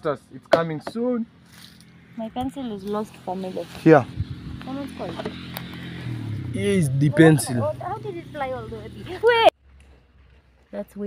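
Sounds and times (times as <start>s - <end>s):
quiet talking: 6.5s - 9.5s.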